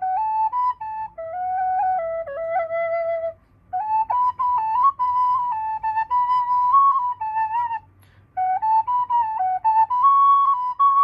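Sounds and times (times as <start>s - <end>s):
wooden flute melody: 0.0s - 11.0s.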